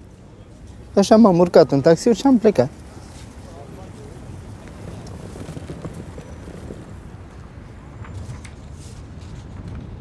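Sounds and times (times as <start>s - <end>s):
faint indistinct voices: 0.0s - 6.8s
low traffic rumble: 0.0s - 10.0s.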